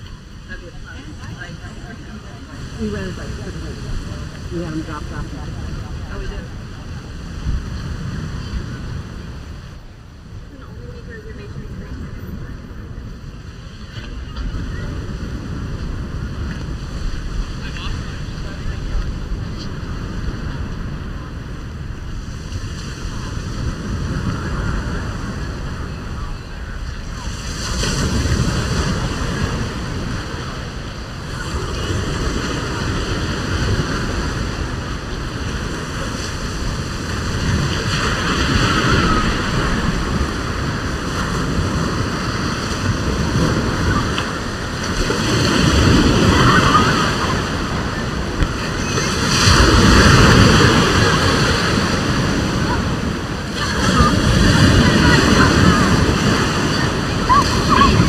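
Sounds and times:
waves breaking on beach: 0:00.0 - 0:58.0
wind buffeting microphone: 0:00.0 - 0:58.0.

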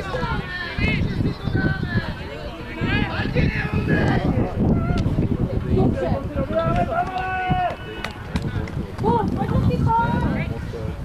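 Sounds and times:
people shouting: 0:06.5 - 0:08.2.

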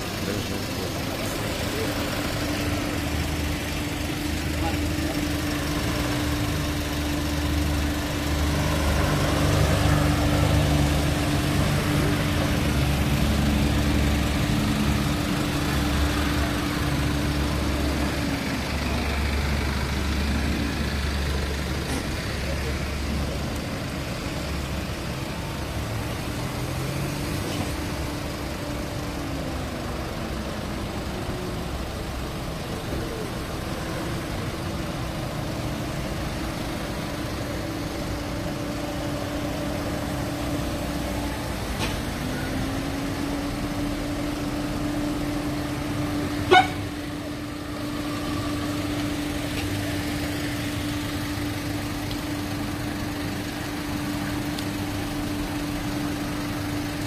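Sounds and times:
vehicle engines rumbling: 0:00.0 - 0:57.0.

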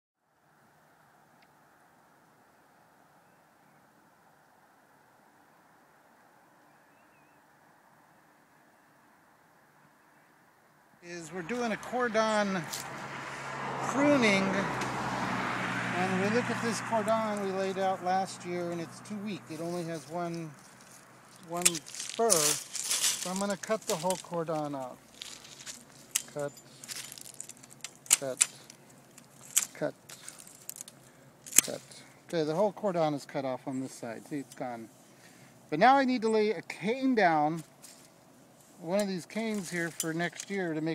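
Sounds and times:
pruning shears snipping wood: 0:21.4 - 0:32.0.

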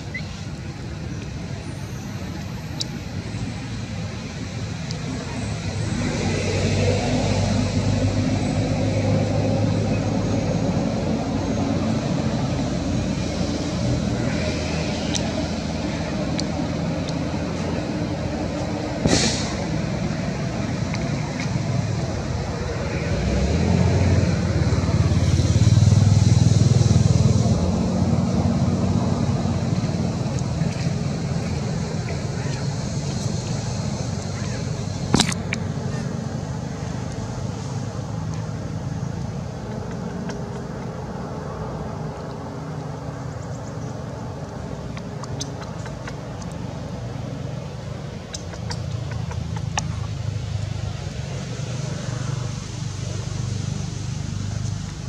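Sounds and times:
road traffic rumble: 0:00.0 - 0:55.0
sharp click: 0:35.1 - 0:35.6.

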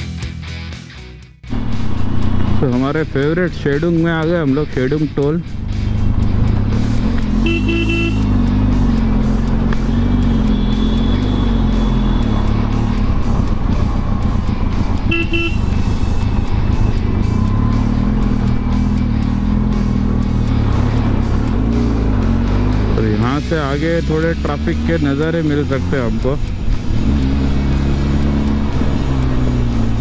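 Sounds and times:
background music: 0:00.0 - 0:30.0
motorcycle engine running: 0:01.5 - 0:30.0
vehicle horn honks: 0:07.3 - 0:08.4, 0:10.0 - 0:12.5, 0:15.0 - 0:15.9.

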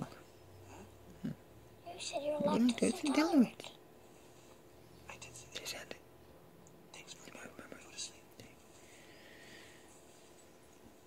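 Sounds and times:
person whispering: 0:05.1 - 0:06.0, 0:07.0 - 0:08.6.

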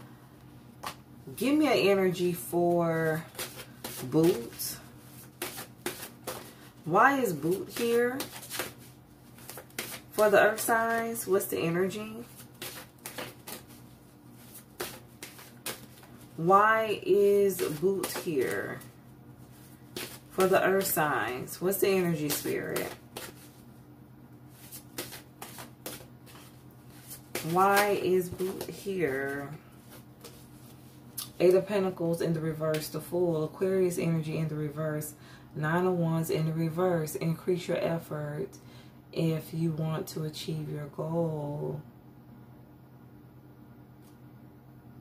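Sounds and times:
faint steady hum: 0:00.0 - 0:45.0
cards being shuffled: 0:03.1 - 0:16.5, 0:17.1 - 0:23.6, 0:24.5 - 0:31.4.

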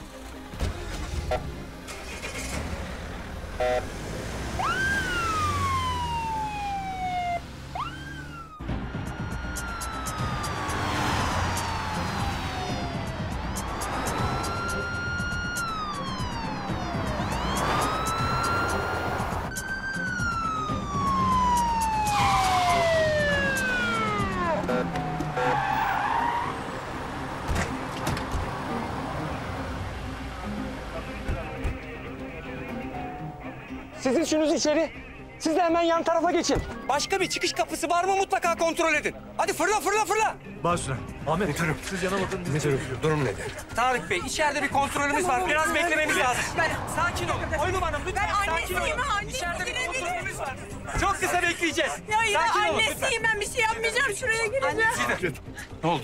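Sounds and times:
background music: 0:00.0 - 0:56.0
low vehicle rumble: 0:00.6 - 0:25.4, 0:44.9 - 0:50.9
police sirens wailing: 0:01.2 - 0:34.0, 0:41.9 - 0:55.2.

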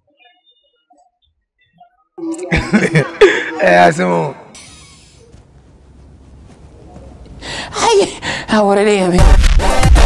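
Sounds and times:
man's wavering vocal cry: 0:02.2 - 0:04.4.

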